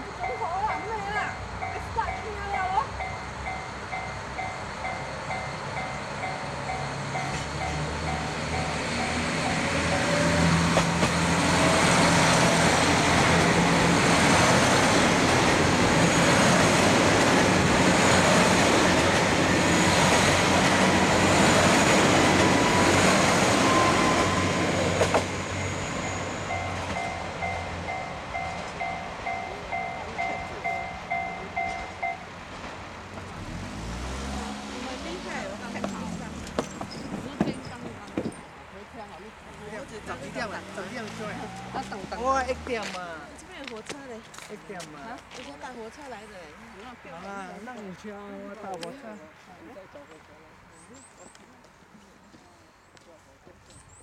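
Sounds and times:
diesel train passing: 0:00.0 - 0:51.4
level crossing bell ringing: 0:00.1 - 0:10.1, 0:25.7 - 0:32.3.

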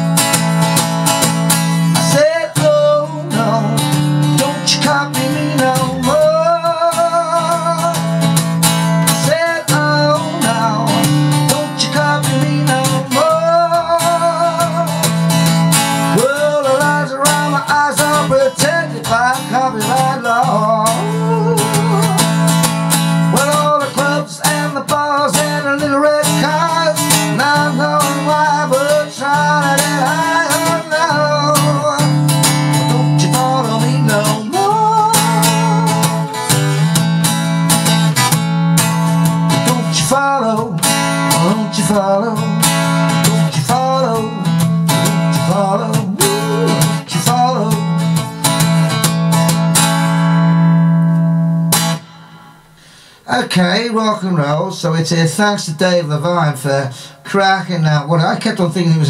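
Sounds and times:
acoustic blues guitar: 0:00.0 - 0:59.0.

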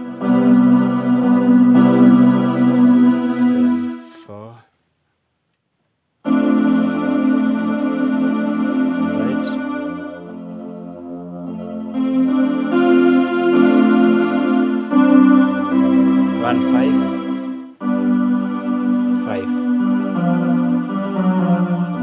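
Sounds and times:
electronic keyboard string chords: 0:00.0 - 0:04.2, 0:06.2 - 0:22.0.

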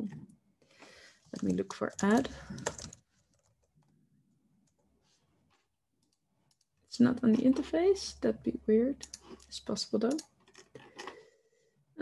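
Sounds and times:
keyboard and mouse clicks: 0:01.3 - 0:04.0, 0:09.0 - 0:11.2.

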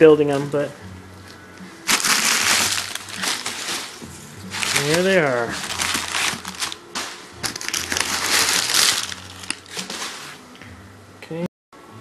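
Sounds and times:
cardboard boxes scraping: 0:01.9 - 0:06.8
packing paper rustling: 0:01.9 - 0:10.4.

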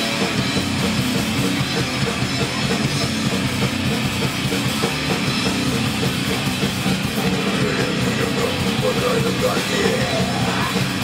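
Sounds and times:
distorted electric guitars: 0:00.0 - 0:11.0
pounding drum kit: 0:00.0 - 0:11.0.

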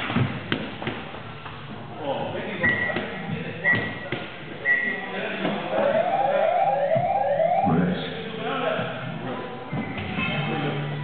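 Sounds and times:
electronic siren wail: 0:05.7 - 0:08.0.

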